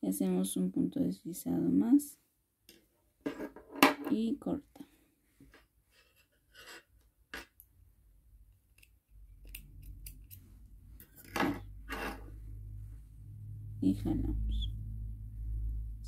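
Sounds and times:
low rumble: 11.8s - 16.0s.

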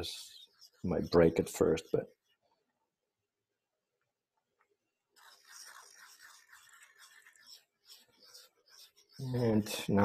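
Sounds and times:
pencil lead scraping in sharpener: 0.0s - 2.5s, 5.2s - 9.9s.

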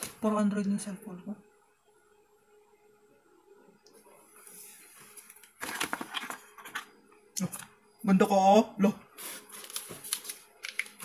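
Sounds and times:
packaging rustling and crinkling: 5.1s - 6.8s, 9.2s - 11.0s
packaging sliding hiss: 9.2s - 11.0s.

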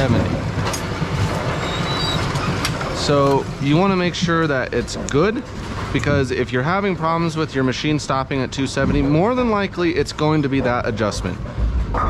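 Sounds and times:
bowling pinsetter clatter and rumble: 0.0s - 12.0s.

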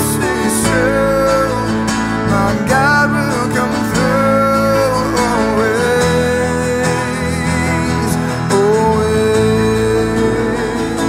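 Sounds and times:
low accompaniment: 0.0s - 11.0s
man singing long notes: 0.0s - 11.0s
strummed acoustic guitar: 0.0s - 11.0s.

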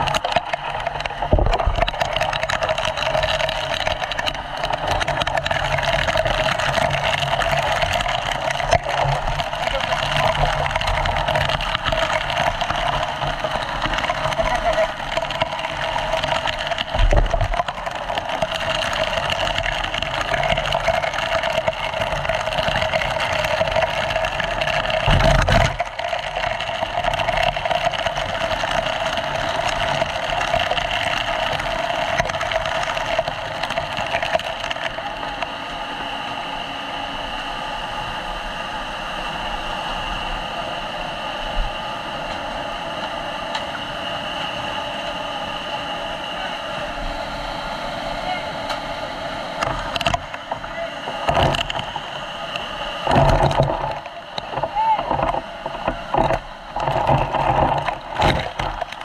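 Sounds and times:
fire hose spraying water: 0.0s - 38.4s
pump engine running: 0.0s - 59.0s.

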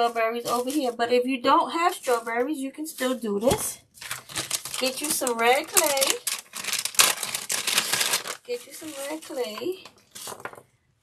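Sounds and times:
clay packet rustling and crinkling: 0.0s - 10.8s
sharp crackle: 4.0s - 9.3s.

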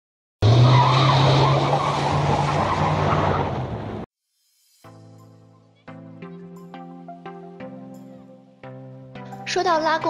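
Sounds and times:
car tyres screeching: 0.4s - 4.0s.

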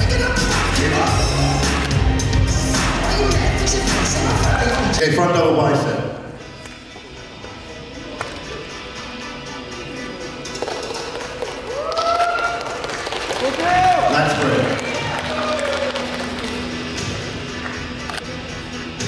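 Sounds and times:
background music in a hall: 0.0s - 19.0s.

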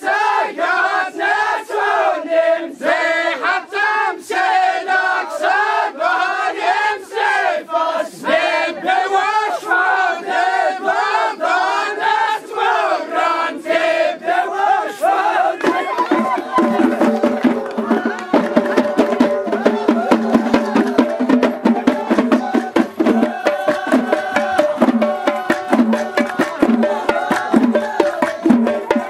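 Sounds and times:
men chanting together: 0.0s - 29.0s
frame drums beating: 15.6s - 29.0s.

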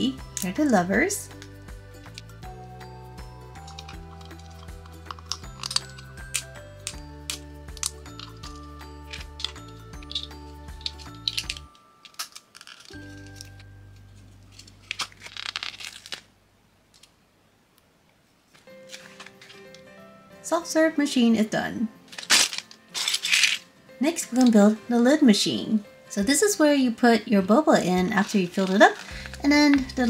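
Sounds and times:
background music: 0.0s - 16.2s, 18.6s - 30.0s
plastic pieces snapping together: 3.6s - 13.6s, 14.6s - 16.2s, 22.1s - 23.6s
crinkling rustle: 3.6s - 16.3s, 18.5s - 19.9s, 22.0s - 23.7s, 28.0s - 30.0s.

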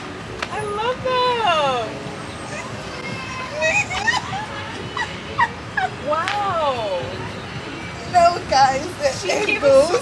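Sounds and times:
woman squealing: 2.5s - 6.2s.

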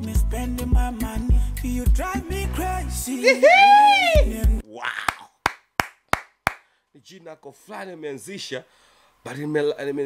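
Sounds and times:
person clapping hands: 5.0s - 6.7s.

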